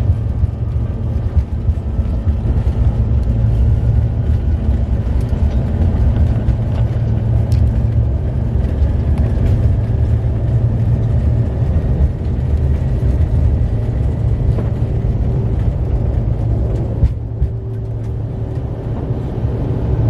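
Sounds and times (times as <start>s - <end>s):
plane engines rumbling: 0.0s - 20.0s.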